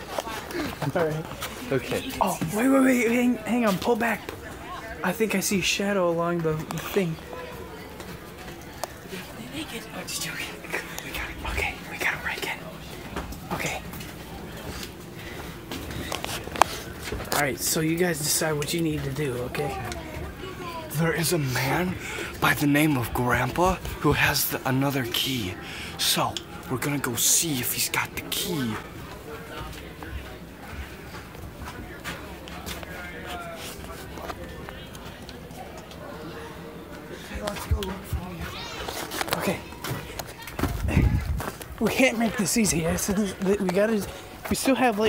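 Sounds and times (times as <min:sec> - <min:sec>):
quiet indistinct voices: 0:00.0 - 0:45.0
hushed whispering voices: 0:09.0 - 0:14.0.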